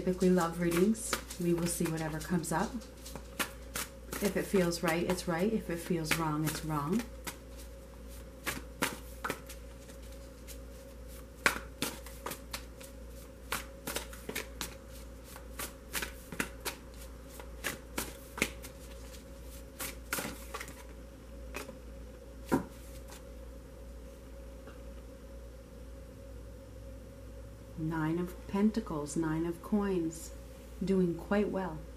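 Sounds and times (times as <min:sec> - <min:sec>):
cards being shuffled: 0:00.0 - 0:21.8, 0:22.4 - 0:23.3
steady low hum: 0:00.0 - 0:31.9.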